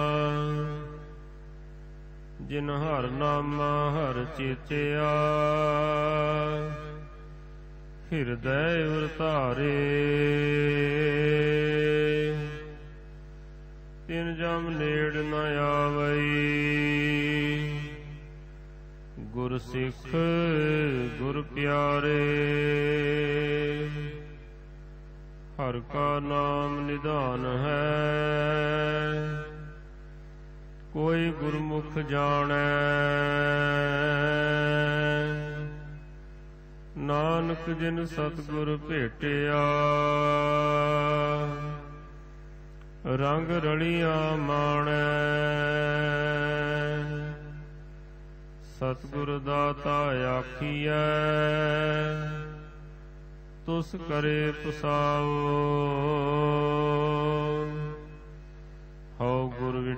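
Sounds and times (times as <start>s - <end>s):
man chanting: 0.0s - 1.4s, 2.4s - 13.1s, 14.0s - 18.5s, 19.1s - 24.6s, 25.5s - 29.9s, 30.8s - 36.2s, 36.9s - 42.4s, 43.0s - 47.9s, 48.6s - 53.0s, 53.6s - 58.4s, 59.1s - 59.9s.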